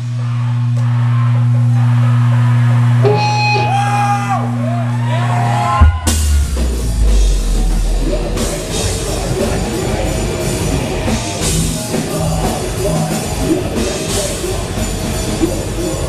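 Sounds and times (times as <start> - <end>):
guitar bending high notes: 3.0 - 3.9, 5.8 - 10.6
heavy metal band breakdown: 5.4 - 16.0
low guitar chord ringing: 5.8 - 9.6.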